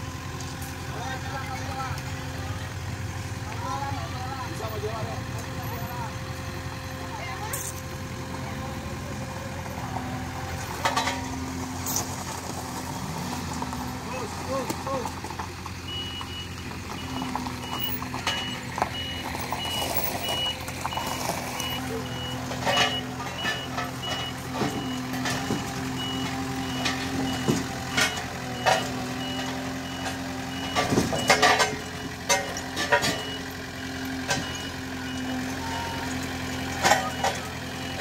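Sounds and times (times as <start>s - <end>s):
road roller diesel engine: 0.0s - 38.0s
metal knocks and clanks: 10.7s - 11.6s, 22.1s - 33.4s
reversing alarm beeping: 15.9s - 33.6s, 34.2s - 38.0s.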